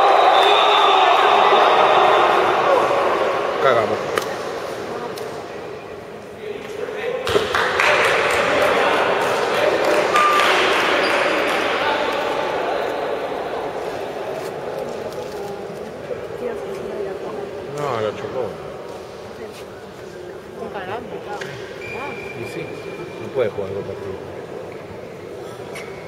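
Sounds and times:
voices echoing in sports hall: 0:00.0 - 0:26.0.

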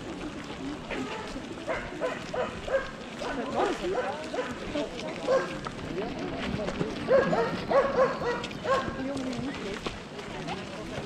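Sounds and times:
people talking: 0:00.0 - 0:11.0
dog barking: 0:01.7 - 0:04.6, 0:05.2 - 0:05.6, 0:07.1 - 0:09.0.

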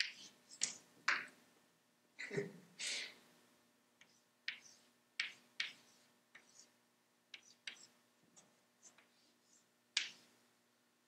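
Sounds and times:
chalk tapping on blackboard: 0:00.0 - 0:01.3, 0:04.0 - 0:10.3.

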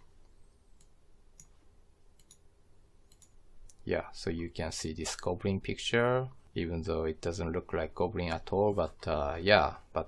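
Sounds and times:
computer mouse clicks: 0:00.2 - 0:03.8.

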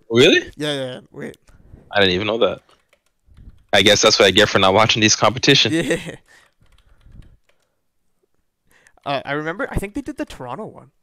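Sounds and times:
faint keyboard typing: 0:00.5 - 0:09.2.

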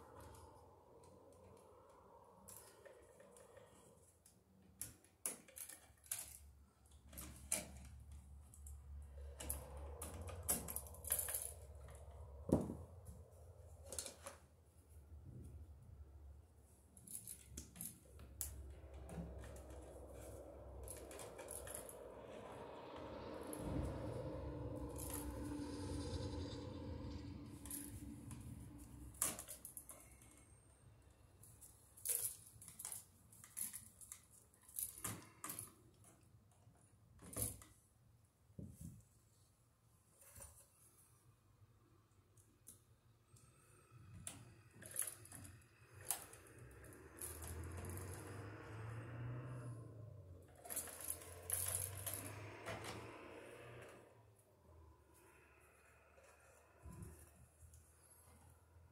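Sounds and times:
wire clicks and rattles: 0:00.0 - 0:15.8, 0:16.6 - 0:37.8, 0:50.4 - 0:54.0.

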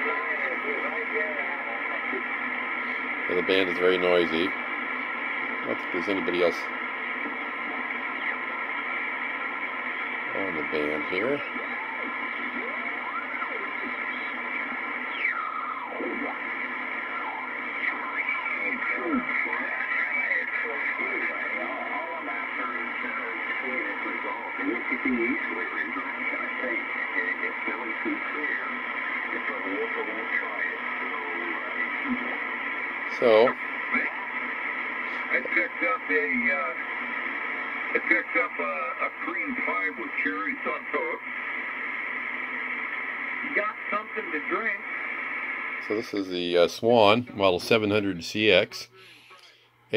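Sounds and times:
radio voices sliding in pitch: 0:00.0 - 0:46.3
radio static: 0:00.0 - 0:49.8.

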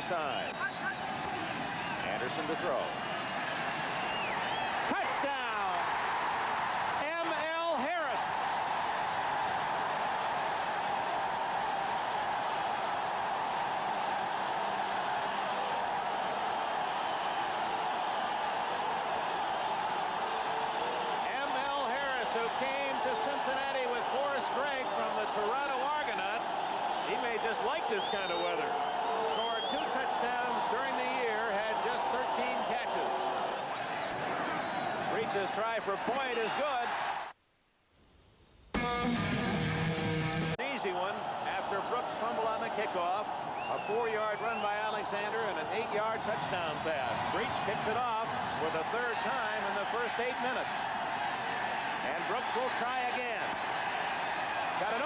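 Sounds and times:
stadium crowd cheering: 0:00.0 - 0:37.4, 0:40.4 - 0:55.0.

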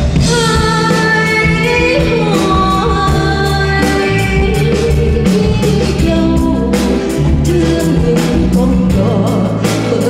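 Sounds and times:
drums: 0:00.0 - 0:10.0
electric guitar: 0:00.0 - 0:10.0
piano: 0:00.0 - 0:10.0
woman singing: 0:00.0 - 0:10.0.

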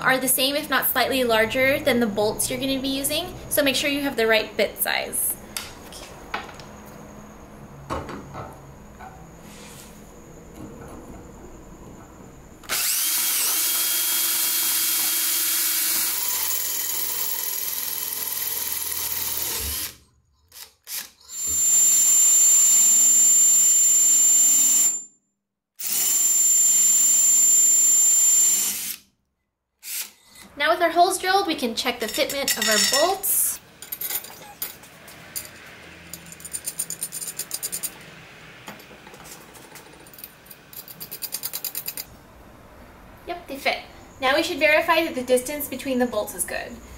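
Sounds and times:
drill boring through metal: 0:12.7 - 0:20.0, 0:20.9 - 0:24.9, 0:25.8 - 0:29.0.

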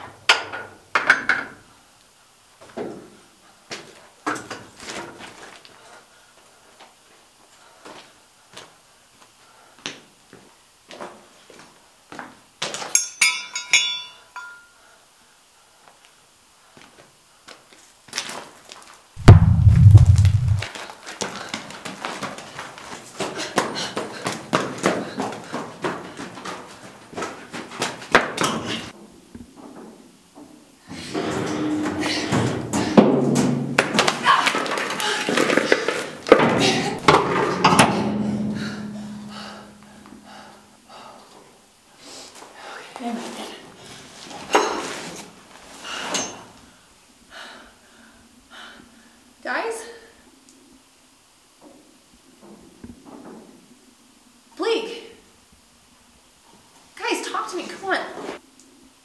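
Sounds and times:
banging on metal door: 0:37.0 - 0:40.0.

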